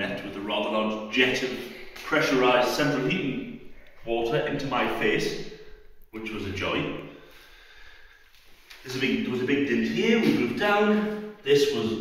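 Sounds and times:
man speaking: 0.0s - 7.2s, 8.8s - 12.0s
faint room noise: 0.0s - 12.0s
short breath: 7.1s - 8.8s.

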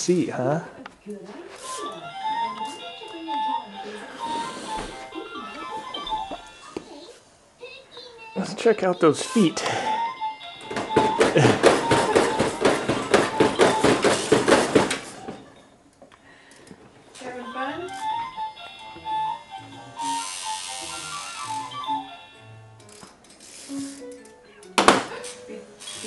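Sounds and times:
electronic toy tune: 1.7s - 6.8s, 9.7s - 14.0s, 17.2s - 22.7s.

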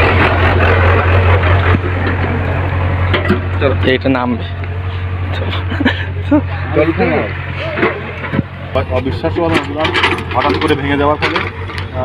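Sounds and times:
excavator diesel engine droning: 0.0s - 12.0s
people talking: 3.6s - 4.8s, 5.4s - 12.0s.

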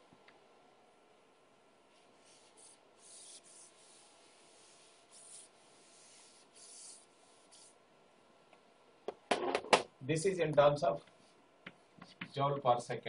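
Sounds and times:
scratching of writing strokes: 1.9s - 7.8s.

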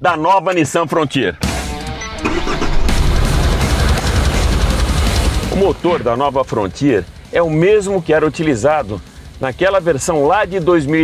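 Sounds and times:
background music: 0.0s - 11.0s
diesel engine starting and running: 1.4s - 11.0s.

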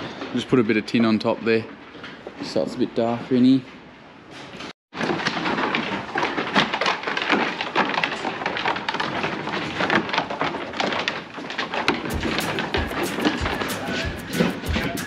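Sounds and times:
sheep hooves clattering on wood: 5.0s - 15.0s
deep thumps: 12.1s - 15.0s.

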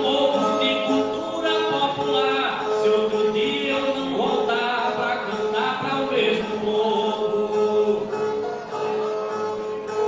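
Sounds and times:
strummed strings: 0.0s - 10.0s.

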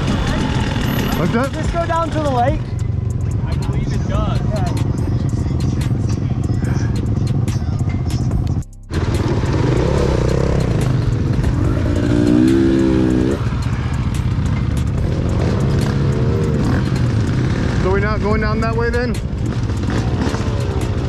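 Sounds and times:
riders' voices: 0.0s - 8.5s, 9.1s - 21.0s
dirt bike engines running: 0.0s - 21.0s.

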